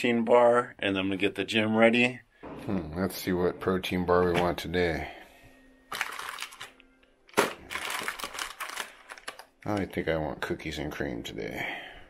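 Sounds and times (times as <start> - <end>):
plastic wrappers crinkling: 5.9 - 10.1.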